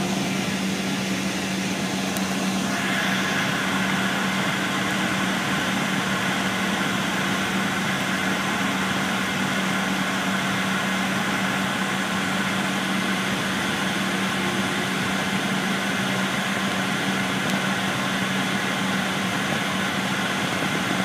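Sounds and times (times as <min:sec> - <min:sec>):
bus engine and road noise: 0:00.0 - 0:21.0
steady low hum: 0:00.0 - 0:21.0.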